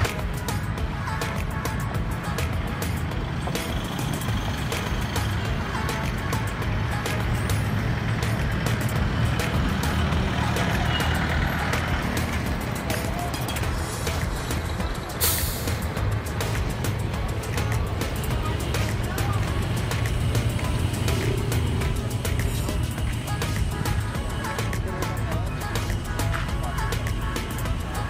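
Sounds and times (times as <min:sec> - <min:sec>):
vehicle engine and road noise: 0:00.0 - 0:28.0
loud hiss of air: 0:13.7 - 0:16.0.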